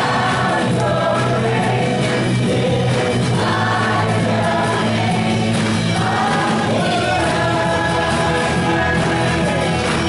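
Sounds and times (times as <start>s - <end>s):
group of singers: 0.0s - 10.0s
worship band playing: 0.0s - 10.0s.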